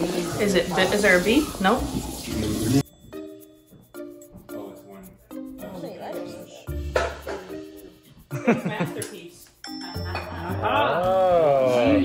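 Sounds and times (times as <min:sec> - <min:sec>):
background music with light beat: 0:02.8 - 0:12.0.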